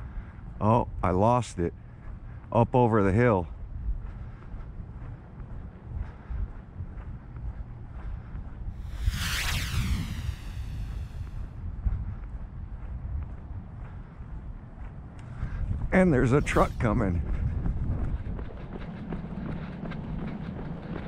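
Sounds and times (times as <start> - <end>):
wind rumbling on microphone: 3.4 - 21.0
vehicle passing by: 8.8 - 11.4.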